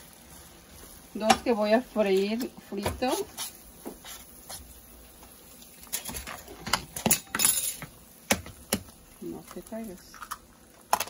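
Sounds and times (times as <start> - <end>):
egg hissing in hot pan: 0.0 - 11.0
utensils knocking on frying pan: 1.2 - 1.6
egg cracking taps: 8.3 - 9.0.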